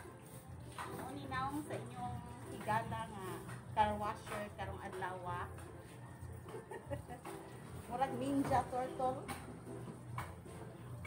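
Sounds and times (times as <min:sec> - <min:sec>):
woman's voice: 0:00.9 - 0:05.6, 0:07.9 - 0:09.4.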